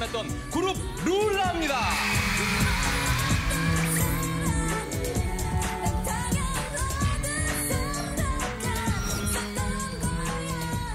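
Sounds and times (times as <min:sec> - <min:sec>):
dance-pop song with woman singing: 0:00.0 - 0:10.9.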